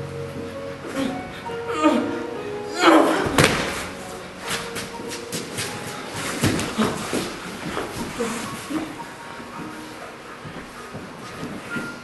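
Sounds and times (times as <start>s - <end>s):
background music: 0.0s - 12.0s
person crying out: 0.8s - 3.4s
body thud on stage floor: 3.2s - 3.9s.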